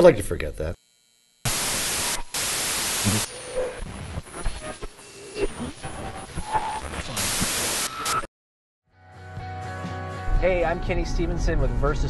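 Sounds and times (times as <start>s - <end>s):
loud white-noise static: 1.5s - 8.3s.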